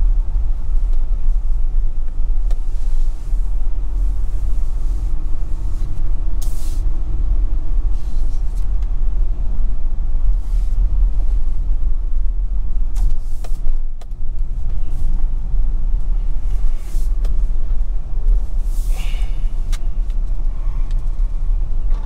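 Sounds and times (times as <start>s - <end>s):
vehicle rumble on rough road: 0.0s - 22.0s.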